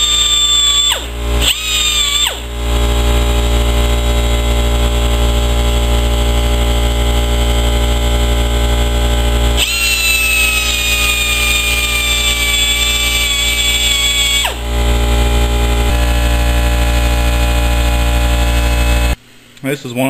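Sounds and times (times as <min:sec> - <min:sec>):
rotary tool grinding steel: 0:00.0 - 0:19.2
rough machine noise: 0:00.0 - 0:19.2
low hum: 0:00.1 - 0:19.5.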